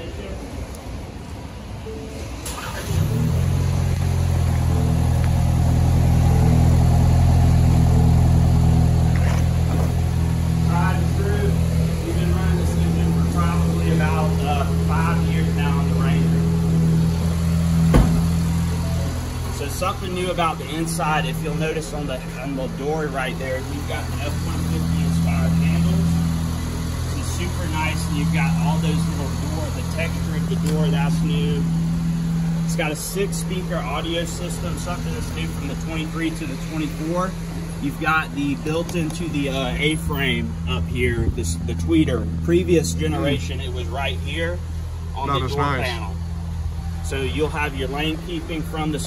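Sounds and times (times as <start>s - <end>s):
car engine starting and idling: 0.0s - 49.0s.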